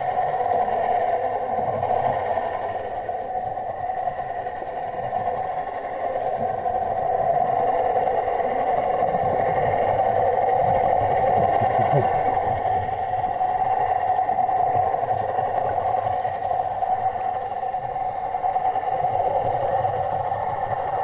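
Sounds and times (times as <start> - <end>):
low rumble of water movement: 0.0 - 21.0
underwater droning hum: 0.0 - 21.0.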